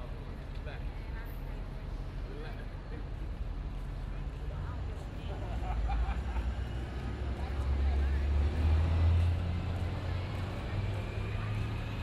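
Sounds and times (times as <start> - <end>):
city street noise: 0.0 - 12.0
vehicle engine rumble: 0.0 - 12.0.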